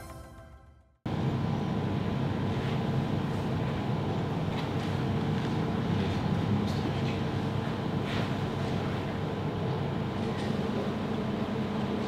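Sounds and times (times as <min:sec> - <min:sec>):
intro music: 0:00.0 - 0:01.0
mechanical room hum: 0:00.0 - 0:12.0.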